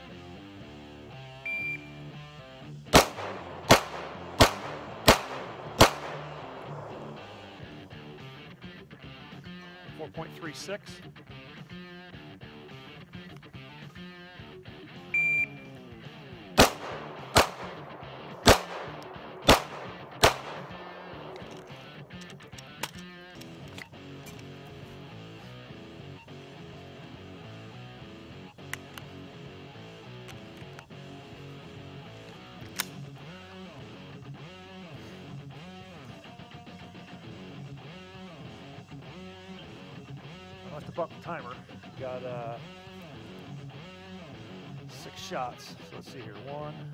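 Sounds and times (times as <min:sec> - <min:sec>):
guitar music: 0:00.0 - 0:46.9
shot timer beep: 0:01.5 - 0:02.0, 0:15.2 - 0:15.7
handgun shots: 0:02.9 - 0:07.5, 0:16.6 - 0:24.4, 0:32.6 - 0:33.0.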